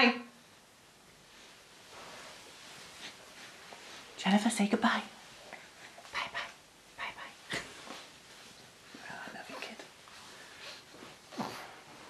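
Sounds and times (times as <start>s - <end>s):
soft vocal sounds: 8.8s - 12.0s.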